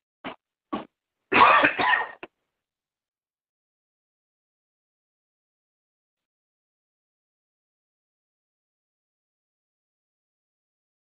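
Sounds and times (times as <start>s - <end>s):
person clearing throat over phone: 0.8s - 2.2s.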